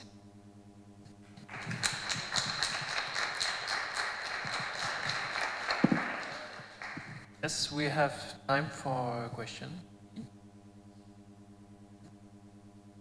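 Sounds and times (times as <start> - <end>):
faint hum: 0.0 - 13.0
audience applauding: 1.5 - 7.3.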